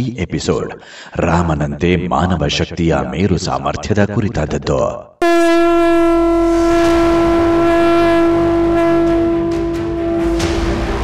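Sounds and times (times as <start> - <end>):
long steady horn-like note: 5.2 - 11.0.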